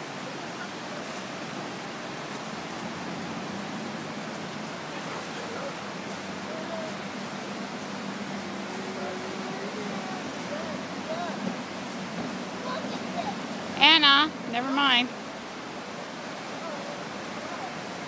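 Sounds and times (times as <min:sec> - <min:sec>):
river rapids rushing: 0:00.0 - 0:18.0.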